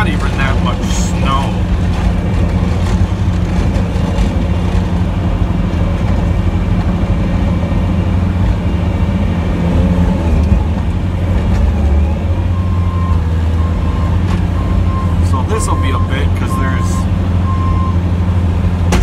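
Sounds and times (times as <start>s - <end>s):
truck engine running under load: 0.0s - 19.0s.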